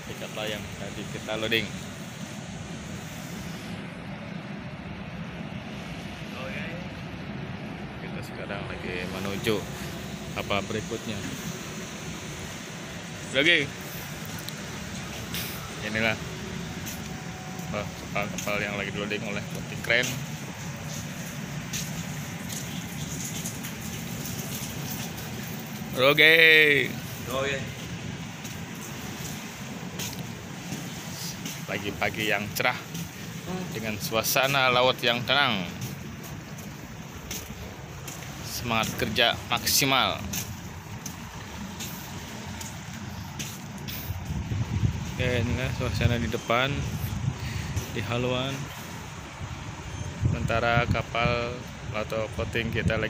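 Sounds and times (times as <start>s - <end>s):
ship machinery drone: 0.0s - 53.0s
wind and sea noise: 0.0s - 53.0s.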